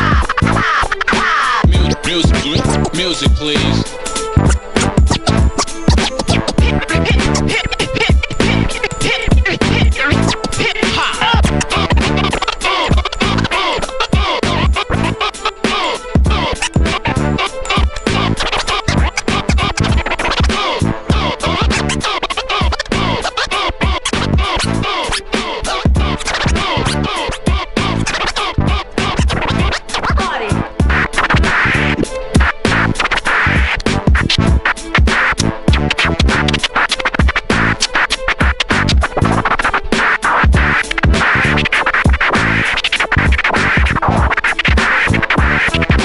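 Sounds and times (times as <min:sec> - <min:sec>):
hip-hop beat kick drum: 0:00.0 - 0:00.6, 0:01.2 - 0:03.8, 0:04.4 - 0:21.9, 0:22.6 - 0:23.2, 0:23.8 - 0:24.8, 0:25.4 - 0:46.0
turntable scratching squeals: 0:00.0 - 0:46.0.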